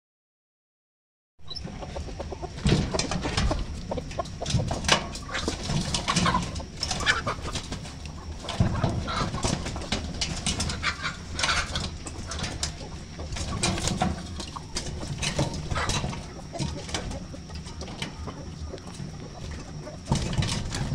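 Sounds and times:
chickens clucking: 0:01.5 - 0:20.9.

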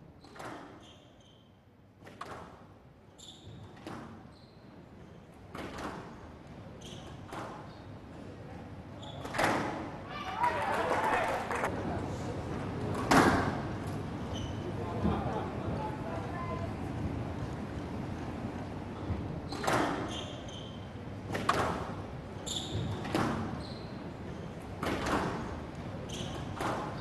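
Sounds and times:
court shoes squeaking: 0:00.2 - 0:01.6, 0:03.2 - 0:06.1, 0:06.7 - 0:08.0, 0:09.0 - 0:10.6, 0:14.2 - 0:14.8, 0:19.4 - 0:21.8, 0:22.4 - 0:27.0.

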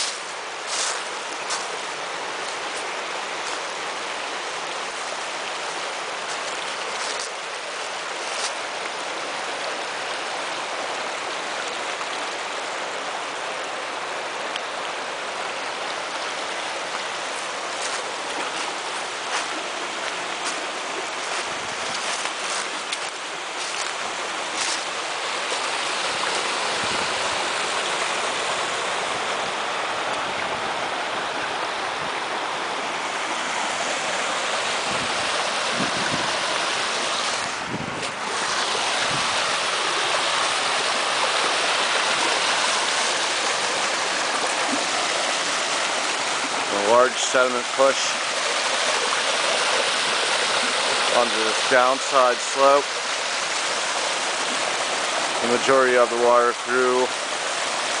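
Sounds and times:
brook running over stones: 0:00.0 - 0:58.0.

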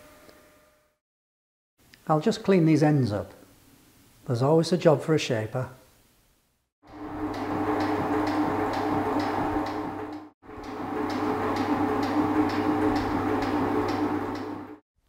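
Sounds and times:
machine drive hum: 0:06.8 - 0:14.8
metal shaper ram ticking: 0:07.0 - 0:14.5.

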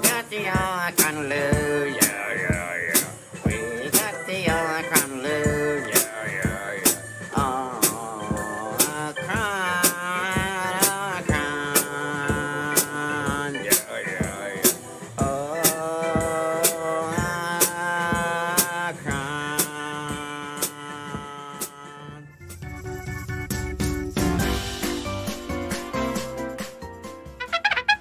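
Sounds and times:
drum beat: 0:00.0 - 0:21.8, 0:27.4 - 0:28.0
person singing long held notes: 0:00.0 - 0:22.3.

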